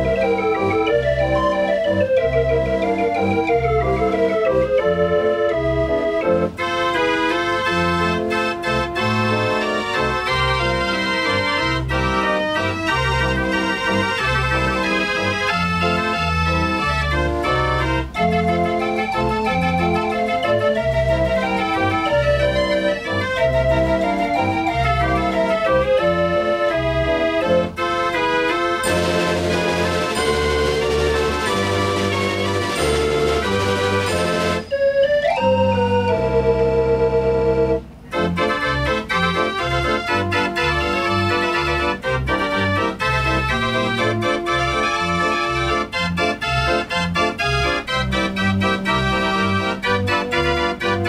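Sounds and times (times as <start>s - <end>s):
street organ playing a tune: 0.0s - 51.0s.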